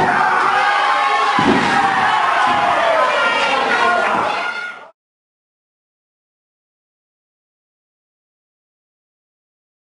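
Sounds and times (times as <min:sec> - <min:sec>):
crowd shouting and cheering: 0:00.0 - 0:05.0.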